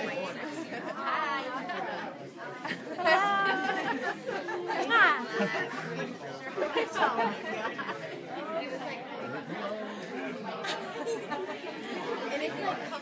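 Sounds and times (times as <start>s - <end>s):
people laughing: 0.0s - 8.6s, 9.2s - 13.0s
many voices talking: 0.0s - 13.0s.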